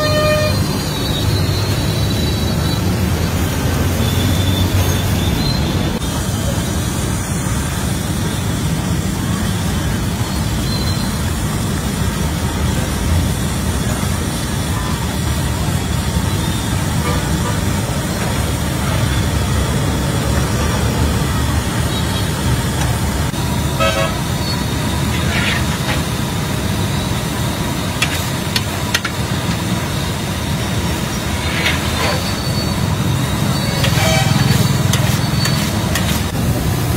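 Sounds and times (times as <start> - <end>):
vehicle horn toots: 0.0 - 0.9, 23.7 - 24.4, 33.6 - 35.6
street traffic rumble: 0.0 - 36.9.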